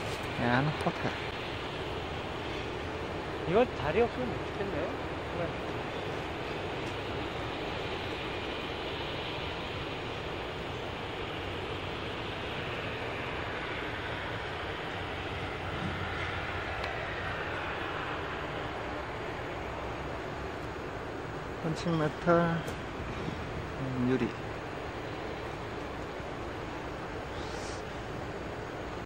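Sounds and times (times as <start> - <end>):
steady rushing noise: 0.0 - 29.0.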